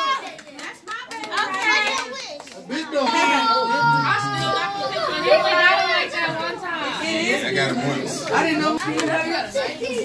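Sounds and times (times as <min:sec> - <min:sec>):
children and adults talking: 0:00.0 - 0:10.0
hand claps: 0:00.2 - 0:02.8.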